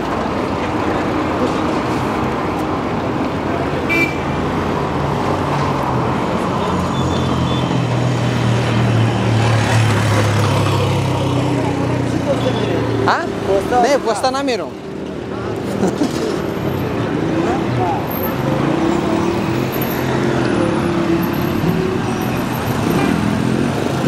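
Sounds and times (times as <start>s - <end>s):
auto-rickshaw engine hum: 0.0s - 24.0s
street traffic: 0.0s - 24.0s
voices: 10.5s - 23.0s.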